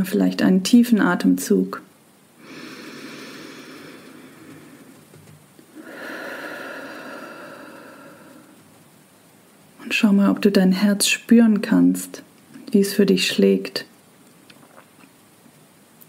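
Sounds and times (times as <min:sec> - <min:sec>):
woman breathing deeply: 0:02.4 - 0:05.1, 0:05.7 - 0:08.6.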